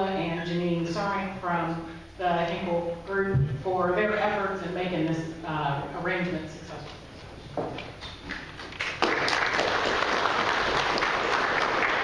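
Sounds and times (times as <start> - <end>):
people applauding: 8.3 - 12.0.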